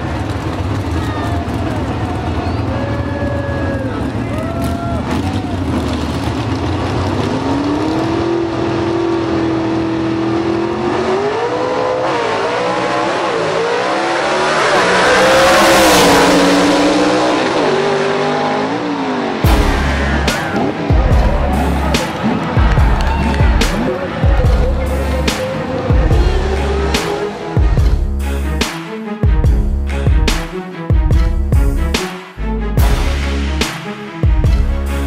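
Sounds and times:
drag car engines revving: 0.0s - 28.8s
cars accelerating through gears: 3.3s - 27.8s.

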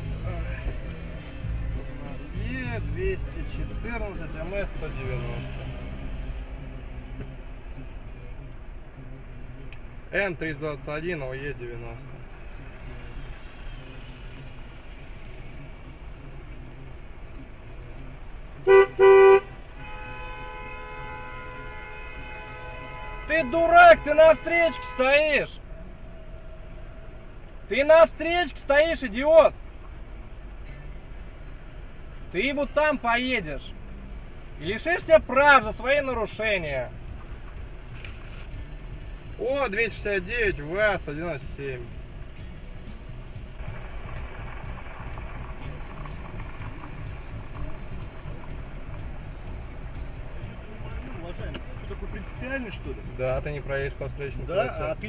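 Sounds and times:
car rumble from inside: 0.0s - 55.0s.

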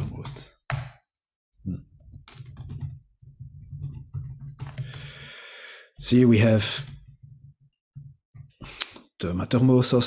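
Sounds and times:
keyboard typing: 1.6s - 5.3s, 6.7s - 8.6s.

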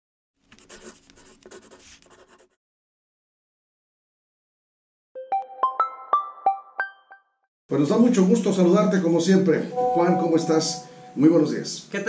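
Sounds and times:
pen scratching on paper: 0.5s - 2.6s.

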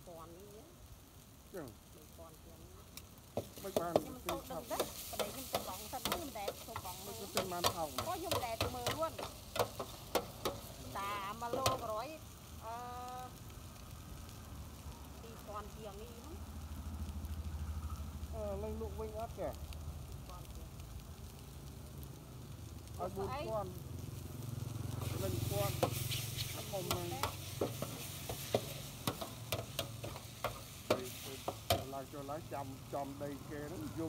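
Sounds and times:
noodles sizzling in a pan: 0.0s - 34.0s
metal utensil scraping a pan: 3.4s - 10.8s, 25.0s - 31.9s.

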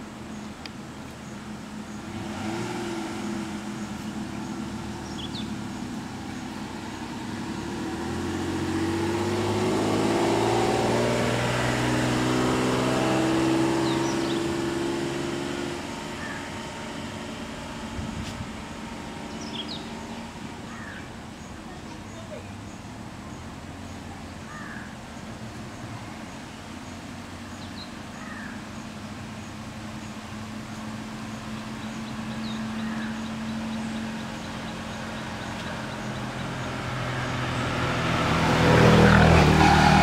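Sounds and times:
vehicle engine running: 0.0s - 40.0s.

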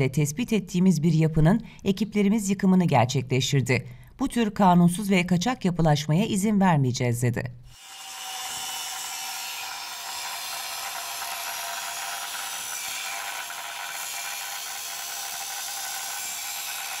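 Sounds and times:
angle grinder cutting metal: 7.7s - 17.0s.

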